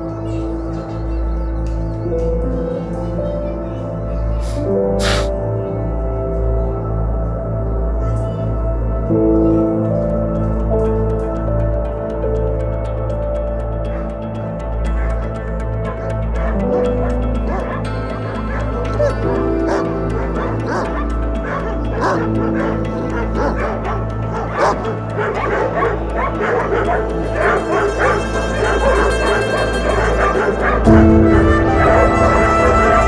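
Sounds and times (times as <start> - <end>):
music score of held notes: 0.0 - 33.0
dogs barking and yelping: 12.6 - 33.0.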